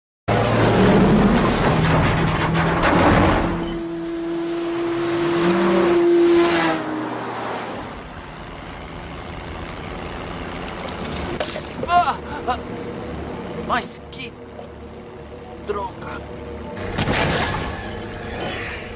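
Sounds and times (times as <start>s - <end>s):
low road hum: 0.3s - 18.9s
truck engine running: 7.9s - 17.2s.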